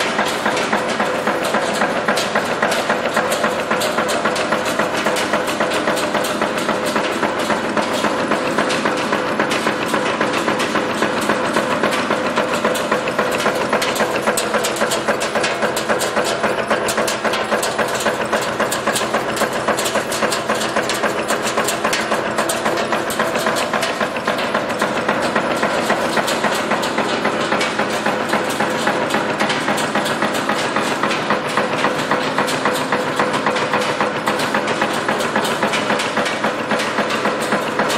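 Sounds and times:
nail making machine clattering: 0.0s - 37.9s.

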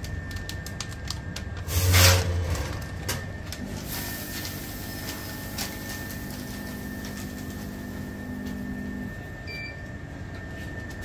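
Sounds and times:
low motor hum: 0.0s - 11.0s
packing machines humming: 0.0s - 11.0s.

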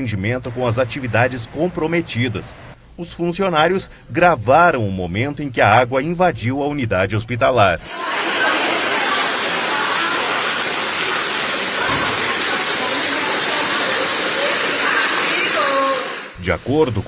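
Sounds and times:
storm water pouring: 7.8s - 17.0s.

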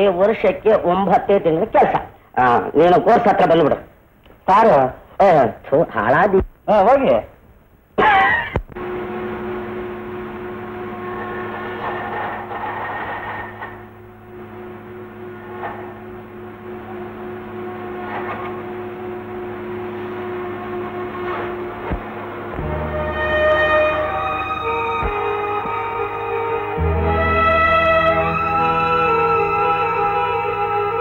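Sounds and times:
sawmill machinery drone: 8.8s - 31.0s.

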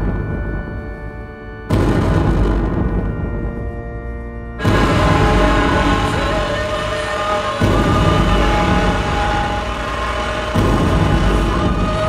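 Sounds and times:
dark droning live music: 0.0s - 12.0s
deep boom: 1.7s - 12.0s.

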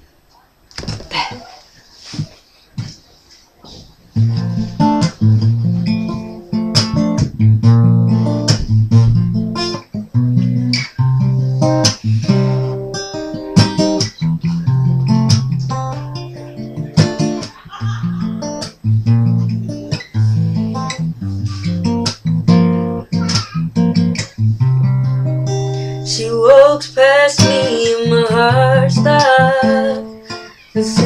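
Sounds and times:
acoustic guitar chords strummed: 4.2s - 31.0s.

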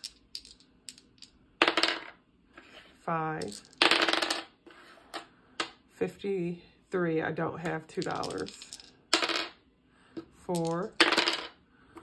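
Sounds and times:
dice clattering on desk: 0.0s - 2.2s, 3.4s - 4.5s, 7.6s - 9.6s, 10.2s - 11.6s.

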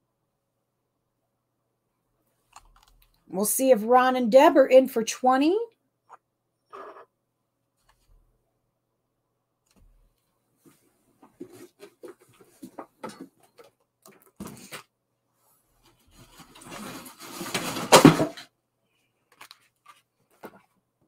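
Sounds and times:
rustling: 15.8s - 18.0s.

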